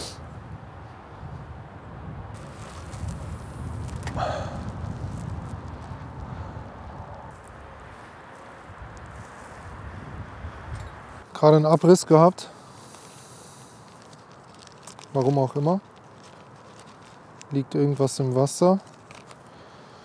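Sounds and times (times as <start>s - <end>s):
wind buffeting microphone: 0.0s - 11.2s.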